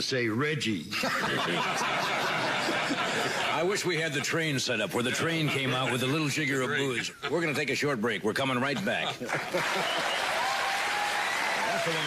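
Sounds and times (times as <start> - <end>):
audience applauding: 9.3 - 12.0.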